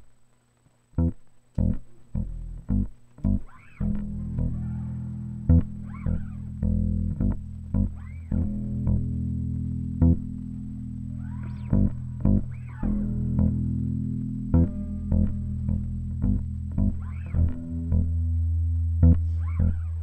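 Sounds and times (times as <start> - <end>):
electric bass guitar: 1.0 - 20.0.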